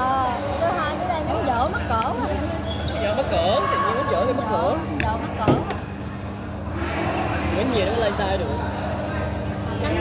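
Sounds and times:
hum of large hall: 0:00.0 - 0:10.0.

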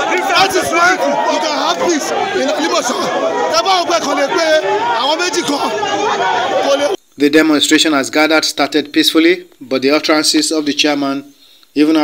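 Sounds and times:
crowd chatter: 0:00.0 - 0:07.0
man speaking loudly: 0:00.0 - 0:12.0.

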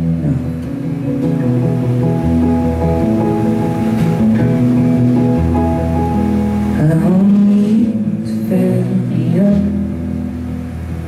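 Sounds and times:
deep bass notes: 0:00.0 - 0:11.0
strummed acoustic guitar: 0:00.0 - 0:11.0.

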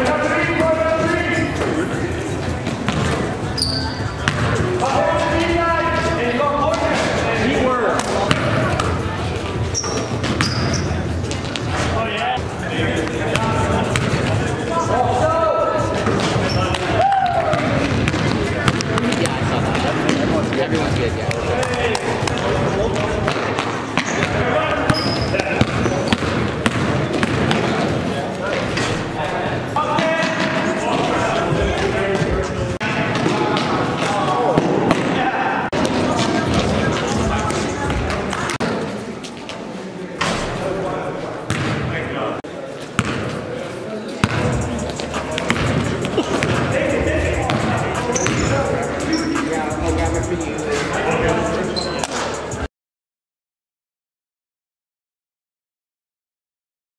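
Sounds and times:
background voices in hall: 0:00.0 - 0:52.7
players' indistinct calls: 0:00.0 - 0:52.7
basketball bouncing on gym floor: 0:02.9 - 0:03.3, 0:04.2 - 0:04.6, 0:08.2 - 0:08.9, 0:13.3 - 0:14.3, 0:17.5 - 0:21.0, 0:22.3 - 0:27.9, 0:41.5 - 0:41.9, 0:43.0 - 0:43.4, 0:44.2 - 0:44.6, 0:45.3 - 0:46.7, 0:47.5 - 0:48.5.

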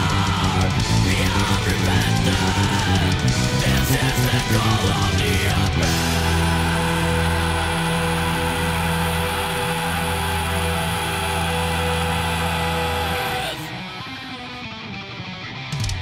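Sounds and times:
heavy metal song: 0:00.0 - 0:16.0.

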